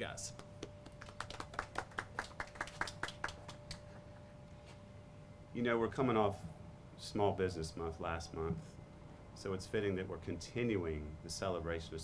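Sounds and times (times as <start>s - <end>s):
light applause: 0.3s - 3.8s.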